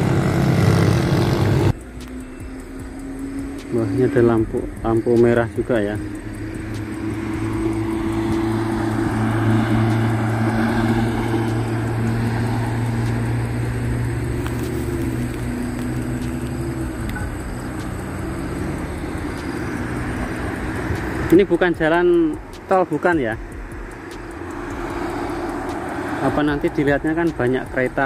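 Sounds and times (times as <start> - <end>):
engine drone: 0.0 - 28.0.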